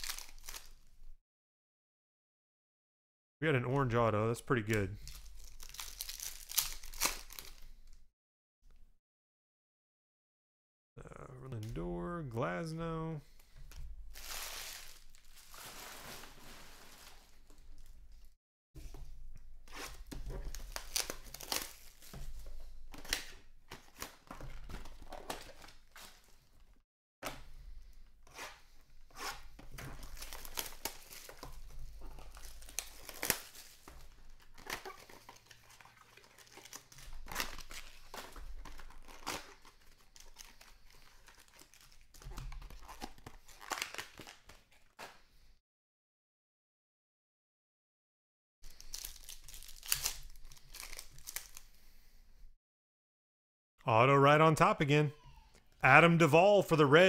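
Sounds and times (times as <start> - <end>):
foil wrappers crinkling and tearing: 0.0 - 0.8, 5.0 - 8.0, 14.1 - 18.0, 19.8 - 26.4, 29.7 - 45.0, 48.7 - 51.7
cards rustling and clicking: 48.8 - 51.6.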